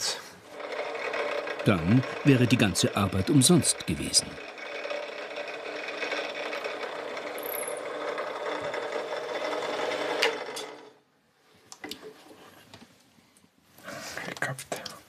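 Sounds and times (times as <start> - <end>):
drill press drilling wood: 0.5 - 11.0.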